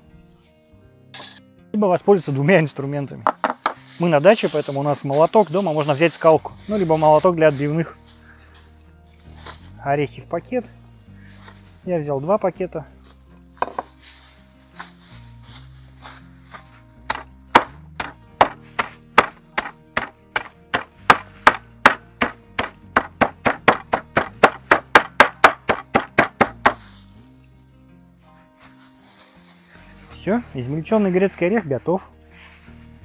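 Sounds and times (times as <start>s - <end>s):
hammer crushing nuts on board: 3.3s - 3.8s, 17.1s - 26.8s
plastic bag handling: 3.6s - 8.6s, 13.0s - 17.4s.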